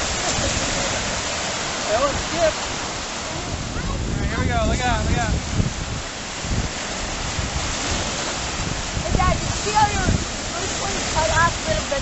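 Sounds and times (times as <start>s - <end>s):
waves breaking on shore: 0.0s - 12.0s
wind buffeting microphone: 0.0s - 12.0s.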